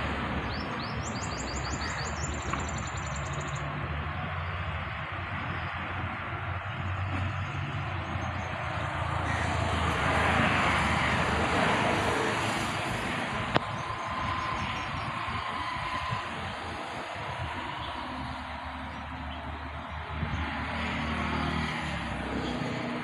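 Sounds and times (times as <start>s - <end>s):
engine passing: 0.0s - 23.0s.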